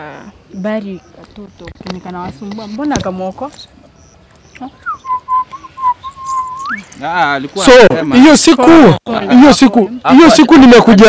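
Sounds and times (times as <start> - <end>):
long whistled note: 4.8 - 6.9.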